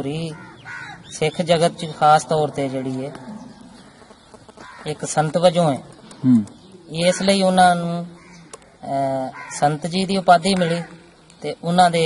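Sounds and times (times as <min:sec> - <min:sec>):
man talking: 0:04.9 - 0:08.2.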